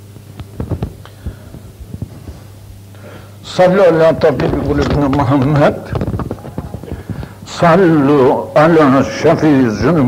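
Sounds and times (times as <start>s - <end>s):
low electrical hum: 0.0s - 10.0s
soft low thumps: 0.4s - 2.9s, 4.1s - 7.6s.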